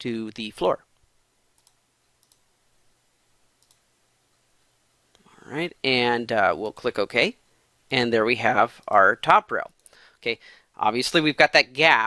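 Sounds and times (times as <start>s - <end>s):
computer mouse clicks: 1.5s - 2.5s, 3.6s - 3.9s.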